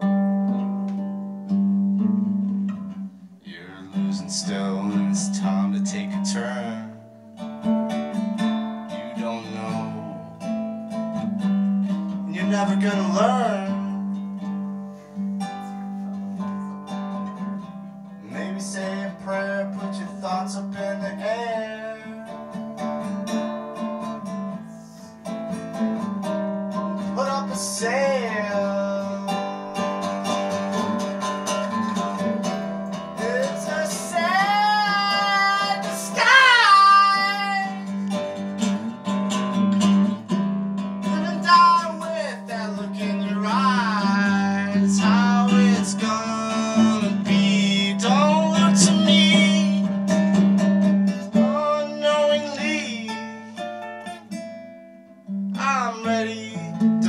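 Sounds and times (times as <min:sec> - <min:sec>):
classical guitar strumming: 0:00.0 - 0:57.0
man singing: 0:03.4 - 0:07.1, 0:08.9 - 0:10.6, 0:12.1 - 0:14.2, 0:18.2 - 0:25.1, 0:26.7 - 0:38.6, 0:41.0 - 0:50.4, 0:51.1 - 0:53.8, 0:55.6 - 0:57.0.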